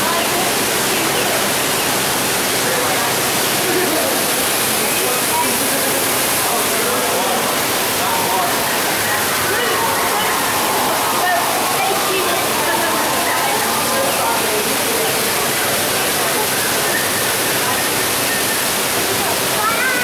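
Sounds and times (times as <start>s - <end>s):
faint murmur of voices: 0.0s - 20.0s
waterfall rushing: 0.0s - 20.0s.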